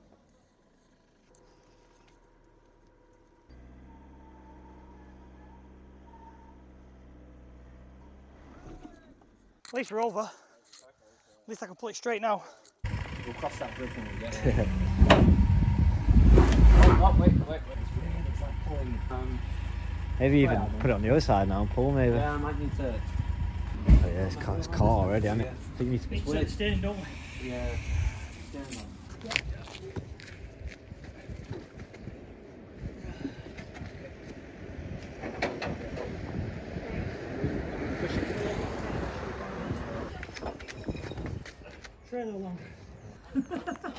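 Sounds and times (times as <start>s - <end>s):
car being dragged rumbling: 12.8s - 29.2s
wind rumble on microphone: 14.4s - 18.1s, 23.2s - 41.7s.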